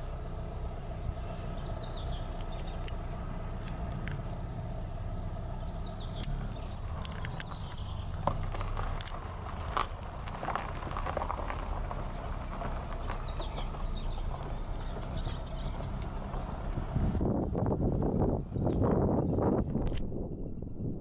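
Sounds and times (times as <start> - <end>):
sharp clicks: 3.6 - 4.5, 5.9 - 9.3
wind rumble on microphone: 5.5 - 21.0.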